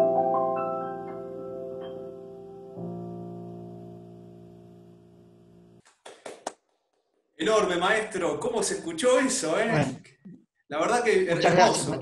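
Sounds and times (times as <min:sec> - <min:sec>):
digital piano chord: 0:00.0 - 0:05.8
hand claps: 0:05.8 - 0:06.6.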